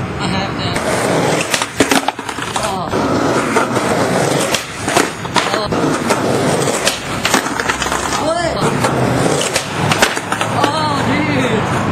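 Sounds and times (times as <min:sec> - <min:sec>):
skateboard clacks: 0:00.7 - 0:11.0
skateboard rolling on pavement: 0:00.7 - 0:11.9.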